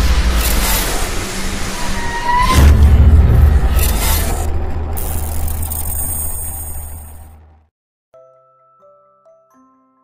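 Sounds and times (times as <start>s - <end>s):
deep steady rumble: 0.0s - 7.6s.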